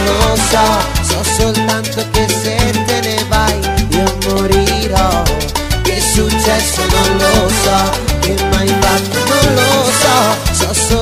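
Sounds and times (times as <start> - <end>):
repeating bass line: 0.0 - 11.0
salsa music: 0.0 - 11.0.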